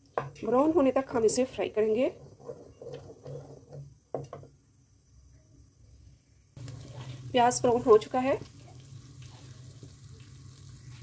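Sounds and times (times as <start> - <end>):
oil sizzling: 0.0 - 5.3, 6.6 - 11.0
onion paste frying in oil: 0.0 - 11.0.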